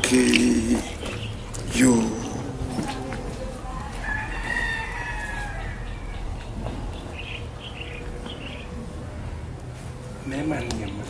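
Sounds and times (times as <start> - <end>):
rooster crowing: 1.8 - 9.0.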